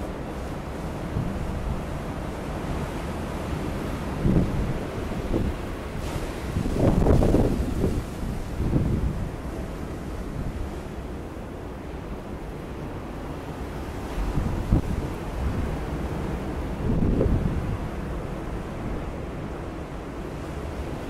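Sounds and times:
wind rumble on microphone: 0.0s - 21.0s.

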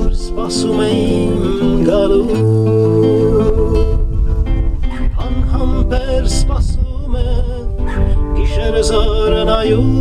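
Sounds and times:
man singing: 0.0s - 4.3s, 5.0s - 10.0s
acoustic guitar chords: 0.0s - 10.0s.

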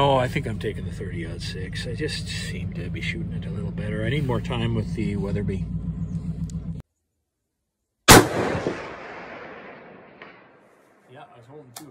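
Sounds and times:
rifle shot with rolling echo: 8.1s - 11.1s.

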